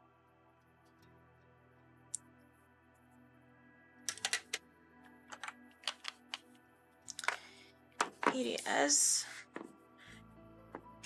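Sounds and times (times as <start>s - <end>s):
soft background music: 0.0s - 11.0s
sharp taps and clicks: 4.1s - 4.6s, 5.3s - 6.4s, 8.0s - 8.4s.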